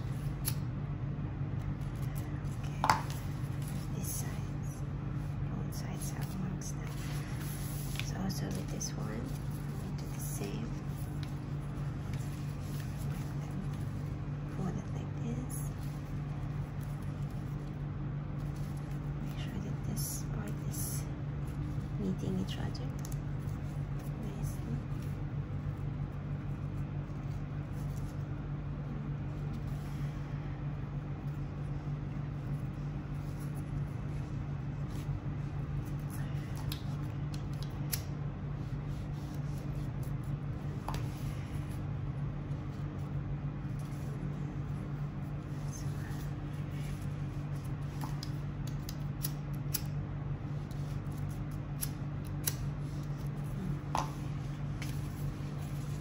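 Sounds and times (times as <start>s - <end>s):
low hum: 0.0s - 56.0s
ribbon rustling and clicks: 6.0s - 14.1s, 35.7s - 41.5s, 45.4s - 50.0s.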